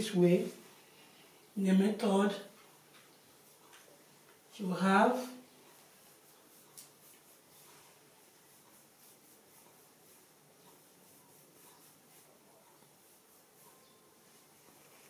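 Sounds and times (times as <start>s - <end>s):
room hiss: 0.0s - 15.0s
fingertips scratching scalp and hair: 5.2s - 15.0s.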